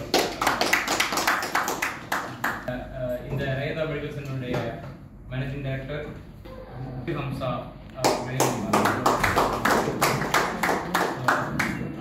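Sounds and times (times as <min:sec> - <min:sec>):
small audience clapping: 0:00.0 - 0:02.7, 0:08.0 - 0:12.0.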